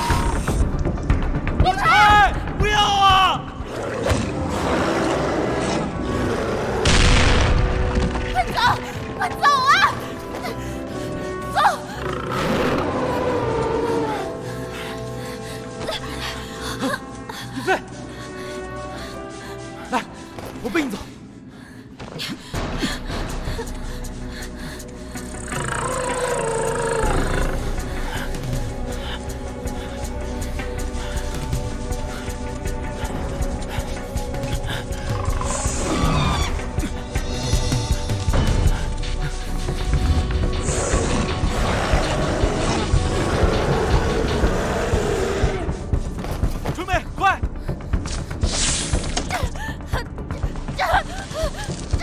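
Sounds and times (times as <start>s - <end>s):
action film score: 0.0s - 52.0s.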